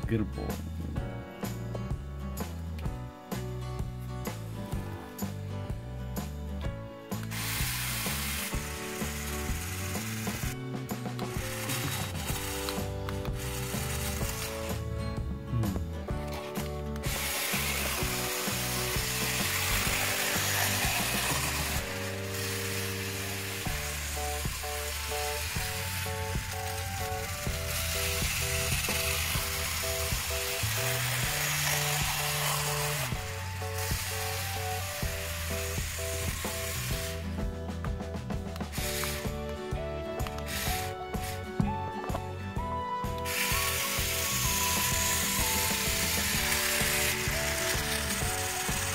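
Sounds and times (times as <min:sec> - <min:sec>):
toy train motor and wheels rattling: 0:07.1 - 0:14.9, 0:16.3 - 0:37.4, 0:38.6 - 0:39.4, 0:40.2 - 0:41.5, 0:43.2 - 0:48.9.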